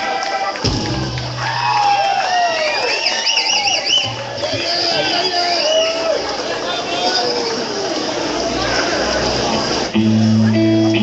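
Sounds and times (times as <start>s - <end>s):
audience cheering and whooping: 0.0s - 9.9s
high whistles: 2.6s - 4.2s.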